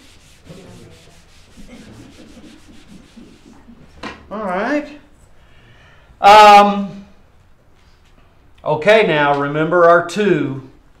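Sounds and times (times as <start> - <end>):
eraser rubbing on whiteboard: 0.0 - 3.8.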